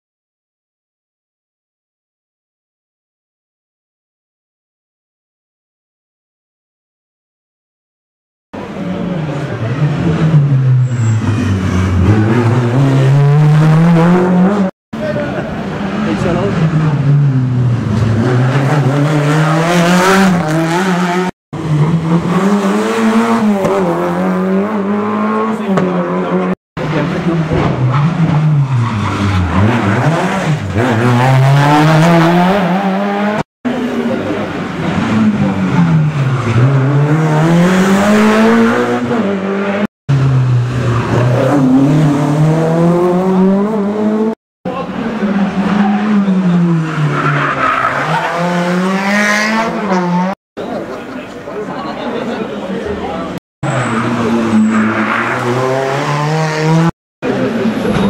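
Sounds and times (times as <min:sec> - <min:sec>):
rally car engines accelerating: 0:08.6 - 0:51.2, 0:52.8 - 0:58.0.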